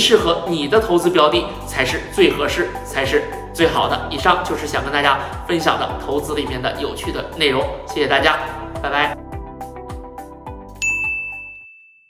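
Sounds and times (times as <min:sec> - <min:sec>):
background music with a beat: 0:00.0 - 0:11.4
bright ding chime: 0:10.8 - 0:12.0.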